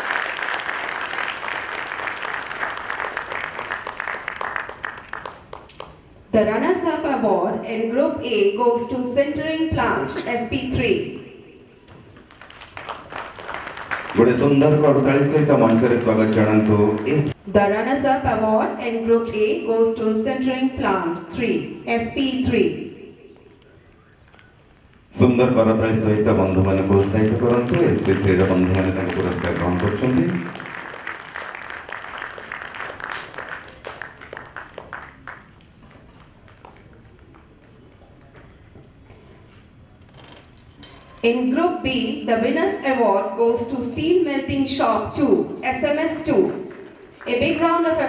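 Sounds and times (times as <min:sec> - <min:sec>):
audience clapping: 0:00.0 - 0:06.2, 0:12.1 - 0:17.4, 0:26.1 - 0:39.0, 0:46.3 - 0:48.0.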